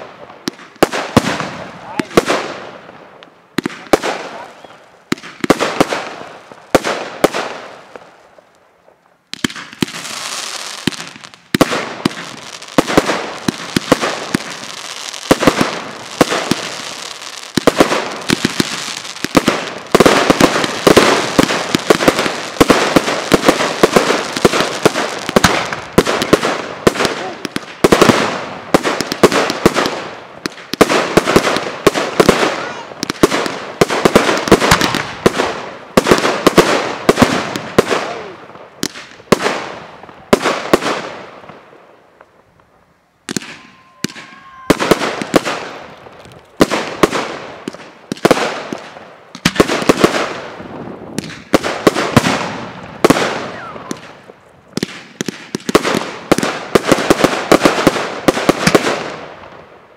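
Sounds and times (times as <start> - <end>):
firework bangs: 0.0 - 8.4, 9.3 - 59.8
continuous firework hiss: 0.0 - 59.9.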